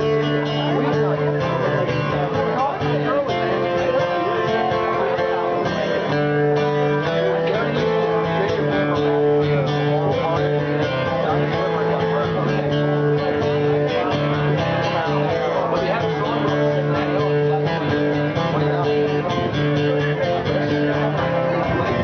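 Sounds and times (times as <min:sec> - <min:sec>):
acoustic guitar piece: 0:00.0 - 0:22.0.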